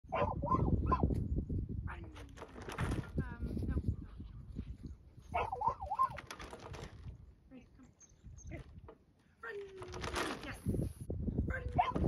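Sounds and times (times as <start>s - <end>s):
dog barking: 0.1s - 1.1s, 5.3s - 6.2s, 11.8s - 12.0s.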